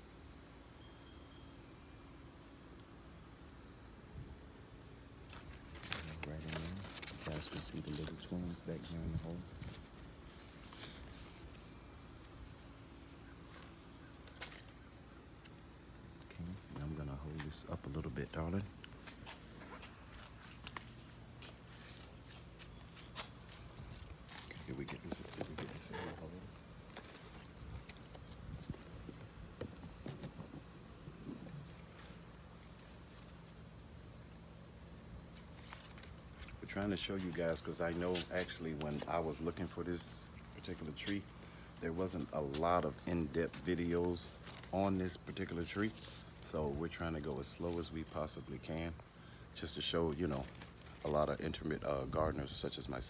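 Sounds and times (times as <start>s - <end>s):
high-pitched hiss: 0.0s - 53.0s
leaves and branches rustling: 5.2s - 53.0s.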